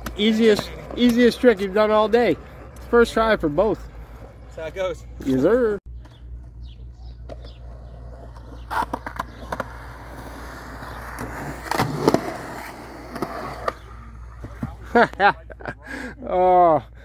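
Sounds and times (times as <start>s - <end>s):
skateboard clacks: 0.0s - 2.9s
skateboard wheels rolling on concrete: 0.0s - 15.3s.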